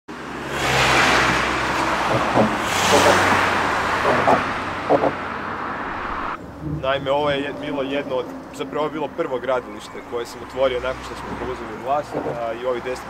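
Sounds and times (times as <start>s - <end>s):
cars passing by: 0.1s - 13.0s
low engine hum: 0.3s - 9.8s.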